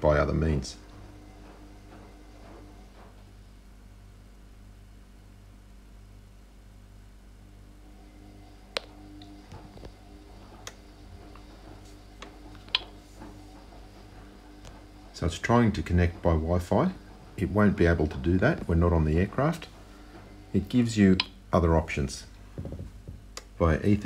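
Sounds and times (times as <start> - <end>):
low electrical hum: 0.0 - 24.0.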